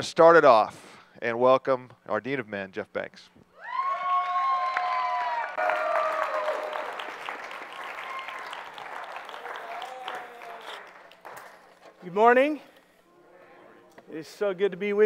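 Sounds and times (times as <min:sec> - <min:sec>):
crowd cheering calls: 0:03.6 - 0:11.6
audience applauding: 0:03.9 - 0:11.8.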